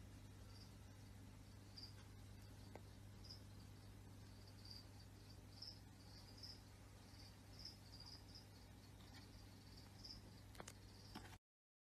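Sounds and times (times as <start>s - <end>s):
low steady hum: 0.0s - 11.4s
cricket chirping: 0.1s - 11.4s.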